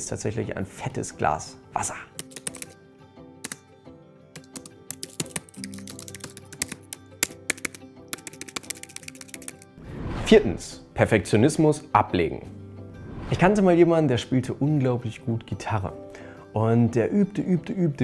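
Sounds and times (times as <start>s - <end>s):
soft background music: 0.0s - 18.0s
computer keyboard typing: 2.2s - 2.8s, 4.4s - 9.7s.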